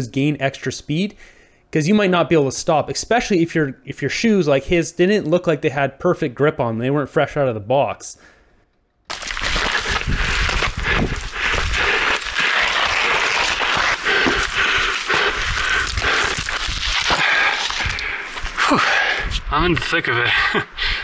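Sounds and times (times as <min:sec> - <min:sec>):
wind buffeting microphone: 0:09.6 - 0:12.2.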